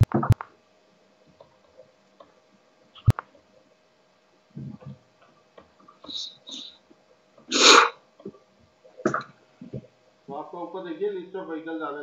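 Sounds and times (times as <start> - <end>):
person sneezing: 7.5 - 8.0.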